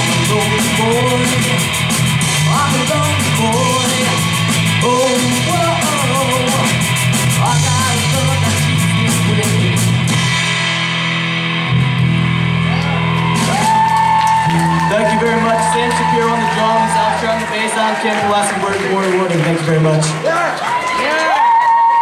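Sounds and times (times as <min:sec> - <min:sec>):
person singing: 0:00.0 - 0:10.0
electric guitar: 0:00.0 - 0:17.5
bass guitar: 0:00.0 - 0:20.2
drum kit: 0:00.0 - 0:20.4.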